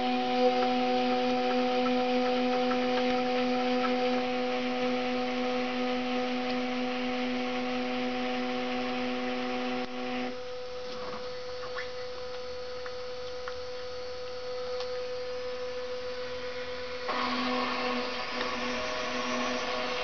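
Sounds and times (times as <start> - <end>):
washing machine motor hum: 0.0 - 20.0.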